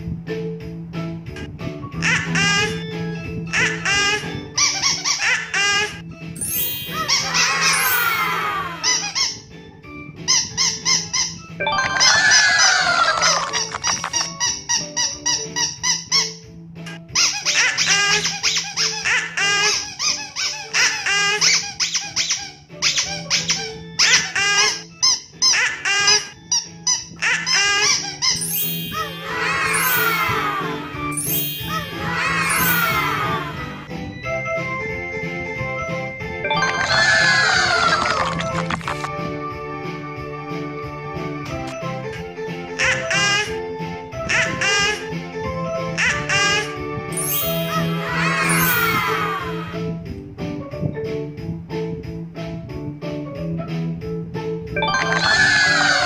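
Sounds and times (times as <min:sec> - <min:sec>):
background music: 0:00.0 - 0:56.0
high-pitched squeaks: 0:03.6 - 0:09.4, 0:10.3 - 0:33.9, 0:46.0 - 0:49.8.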